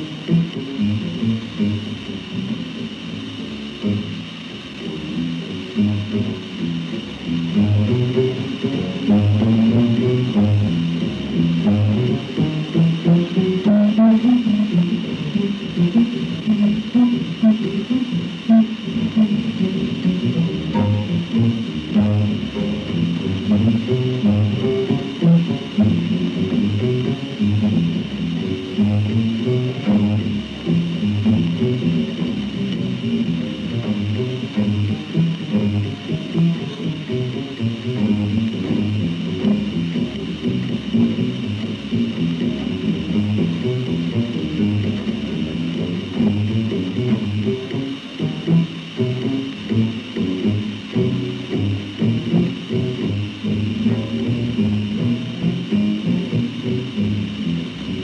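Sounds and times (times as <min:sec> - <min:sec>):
plucked double bass: 0:00.0 - 0:58.0.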